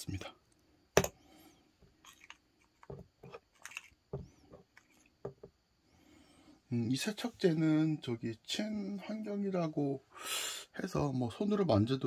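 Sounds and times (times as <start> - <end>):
coin tapping plastic cup: 1.0 - 1.2.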